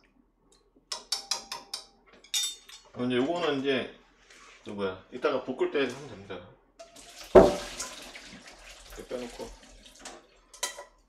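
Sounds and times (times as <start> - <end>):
running water: 6.8 - 10.6
water splashing into a sink: 6.8 - 10.6.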